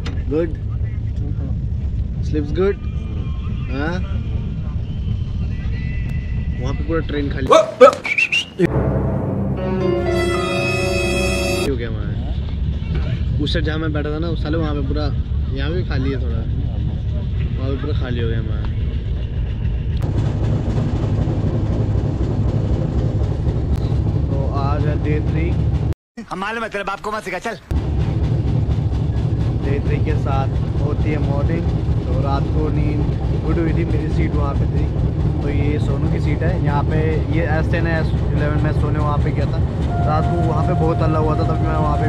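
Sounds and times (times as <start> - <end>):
train rumble: 0.0 - 26.0, 27.6 - 42.0
thin high steady tone: 9.6 - 11.7.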